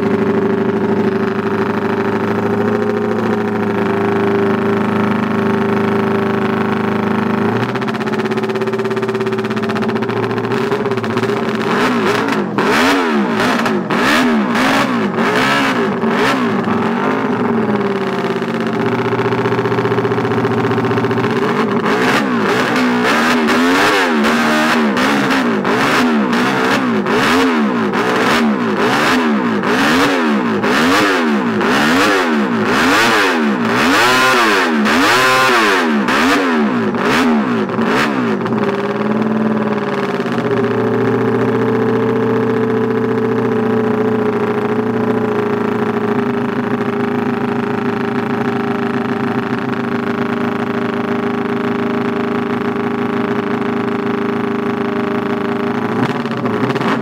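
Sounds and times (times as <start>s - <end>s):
motorcycle engine revving: 0.0s - 57.0s.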